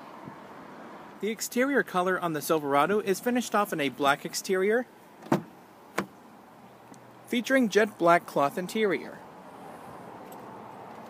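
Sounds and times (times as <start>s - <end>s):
car door latch clicks: 5.2s - 6.2s.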